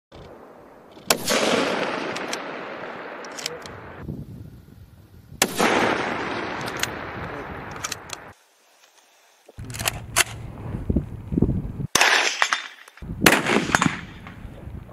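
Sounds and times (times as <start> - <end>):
rifle shots with echo: 0.3 - 4.0, 5.4 - 8.3, 11.9 - 14.4.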